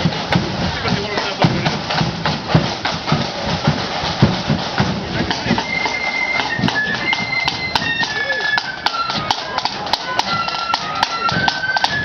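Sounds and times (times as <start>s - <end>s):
marching band drums beating: 0.0s - 12.0s.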